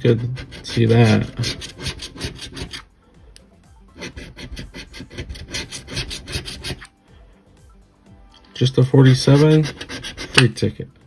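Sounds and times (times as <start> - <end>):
coin scraping a scratch card: 0.0 - 2.9, 4.0 - 6.9, 9.0 - 10.6.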